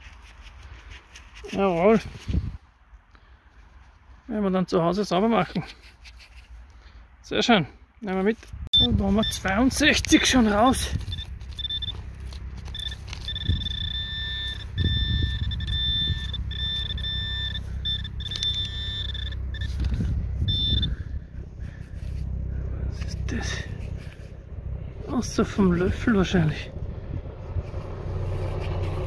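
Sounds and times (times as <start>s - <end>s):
high electronic tone: 8.8s - 9.9s, 10.5s - 12.0s, 12.7s - 21.0s
low handling rumble: 8.8s - 29.0s.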